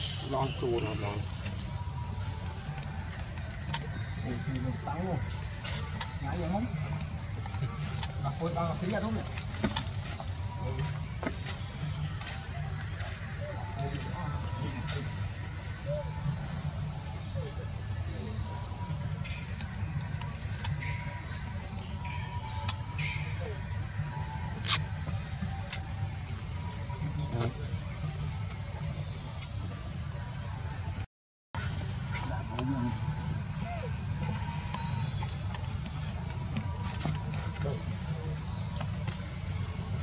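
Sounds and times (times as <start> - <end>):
insect chorus: 0.0 - 40.0
sharp click: 24.6 - 24.8.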